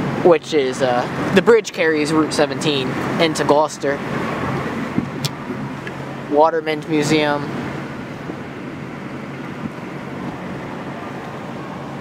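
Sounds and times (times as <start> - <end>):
car road noise hum: 0.0 - 12.0.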